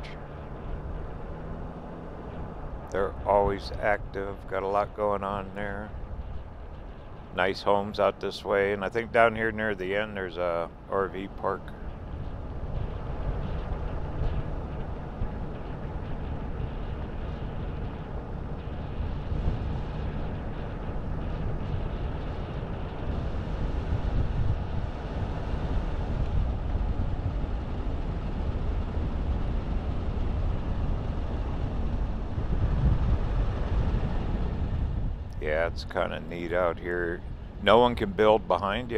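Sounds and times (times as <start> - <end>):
vehicle engine and road noise: 0.0 - 38.9.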